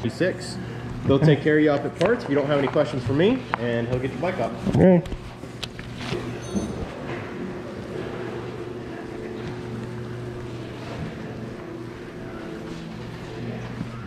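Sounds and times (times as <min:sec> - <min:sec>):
steady mechanical hum: 0:00.0 - 0:14.0.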